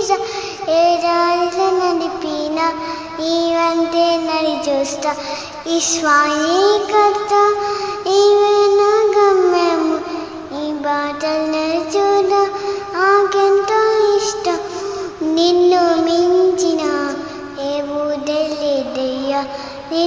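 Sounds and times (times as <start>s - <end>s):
girl singing: 0.0s - 20.0s.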